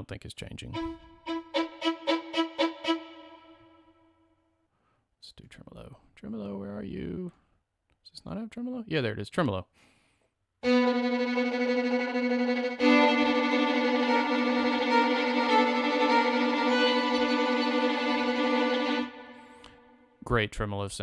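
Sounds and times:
violin playing tremolo: 0.7 - 4.0, 10.6 - 20.0.

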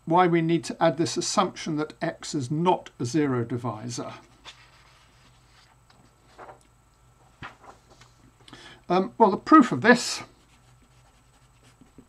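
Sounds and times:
person speaking: 0.0 - 4.4, 8.9 - 12.0
low room noise: 0.0 - 12.0
paper rustling: 4.3 - 6.7, 7.3 - 8.2.

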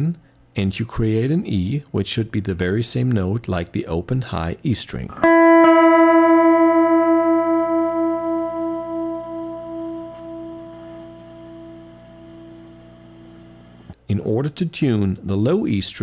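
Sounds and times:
electric guitar strings beating: 5.2 - 12.4.

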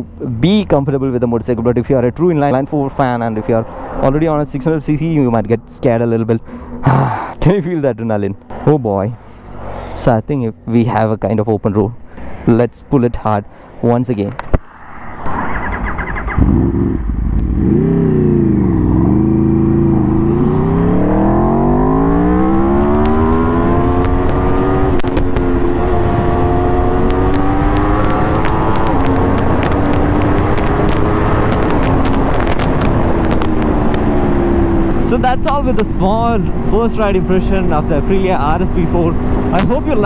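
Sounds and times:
wind noise: 14.4 - 40.0
motorcycle engine revving: 15.4 - 40.0.

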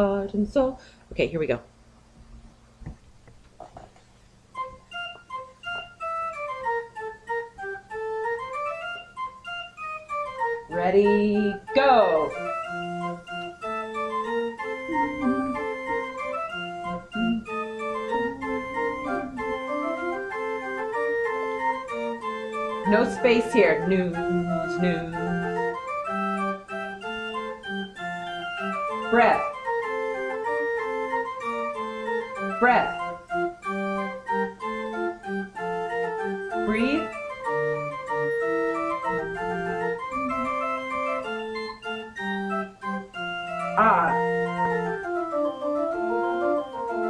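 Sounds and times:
organ playing sustained chords: 4.6 - 47.0.

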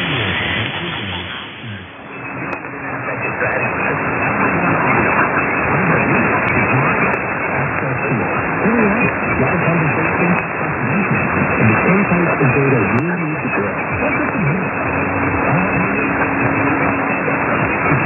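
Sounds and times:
radio static: 0.0 - 18.0
steady low tone: 0.0 - 18.0
voice on am radio: 0.0 - 18.0.

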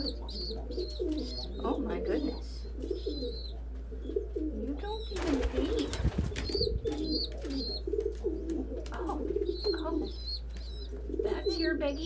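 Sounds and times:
pigeons cooing: 0.0 - 12.0
young pigeon peeping: 0.0 - 12.0.

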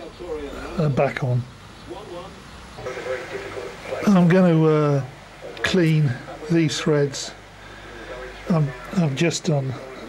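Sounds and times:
low steady hum: 0.0 - 10.0
man speaking quietly: 0.0 - 10.0.

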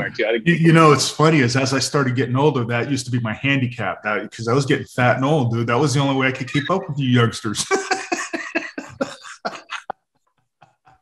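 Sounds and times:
men laughing: 6.2 - 9.9.

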